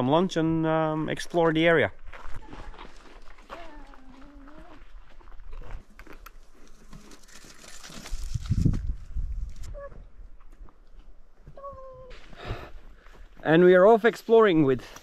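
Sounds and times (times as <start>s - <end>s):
young child's high-pitched vocal sound: 3.5s - 4.9s, 11.6s - 12.2s
wind rumbling on microphone: 8.1s - 10.4s.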